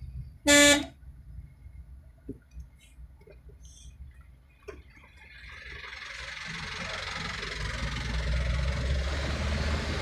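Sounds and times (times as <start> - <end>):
low rumble of moving car: 0.0 - 10.0.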